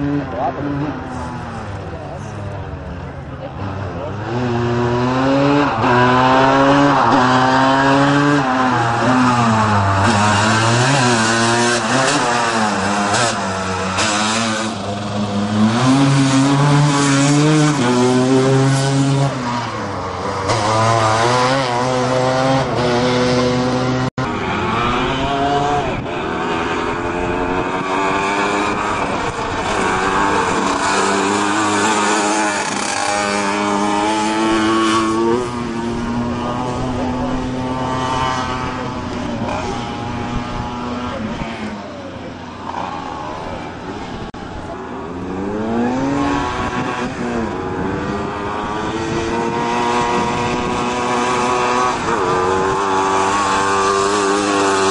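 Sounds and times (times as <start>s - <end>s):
three-wheeler engine revving: 0.0s - 54.9s.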